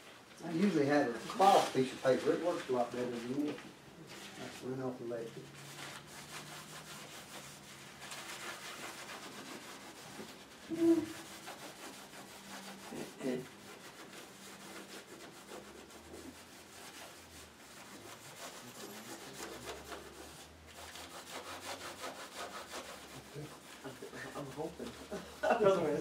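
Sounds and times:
paintbrush scrubbing on paper: 0:00.6 - 0:26.0.

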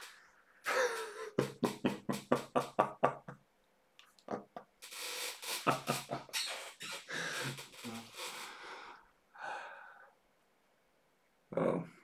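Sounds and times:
man laughing: 0:00.6 - 0:03.4, 0:04.2 - 0:04.6, 0:05.4 - 0:06.4.

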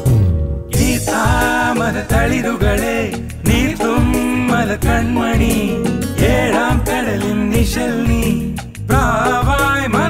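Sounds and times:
band backing with regular beat: 0:00.0 - 0:10.0
person singing: 0:00.8 - 0:10.0.

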